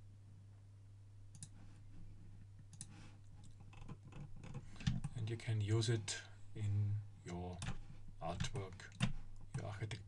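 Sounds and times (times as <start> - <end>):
low electrical hum: 0.0 - 10.0
computer mouse clicks: 1.3 - 1.6, 2.7 - 5.1.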